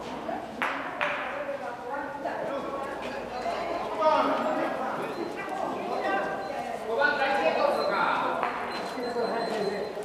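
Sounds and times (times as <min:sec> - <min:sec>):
people talking in echoing hall: 0:00.0 - 0:10.0.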